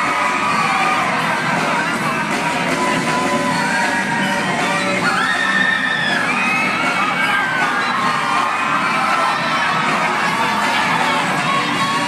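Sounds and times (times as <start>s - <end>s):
large audience cheering and screaming: 0.0s - 12.0s
high-pitched whoops: 4.0s - 9.5s.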